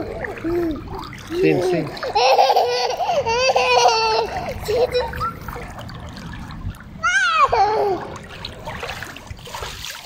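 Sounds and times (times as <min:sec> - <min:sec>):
light splashing in pool water: 0:00.0 - 0:10.0.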